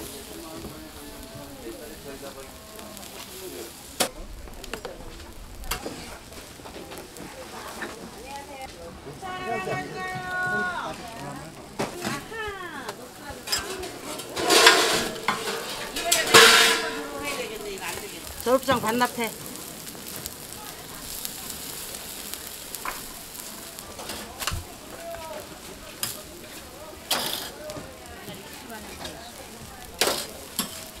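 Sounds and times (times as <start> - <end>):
pancakes sizzling in oil: 0.0 - 31.0
metal spatula scraping griddle: 13.3 - 20.6, 26.0 - 27.8, 28.8 - 31.0.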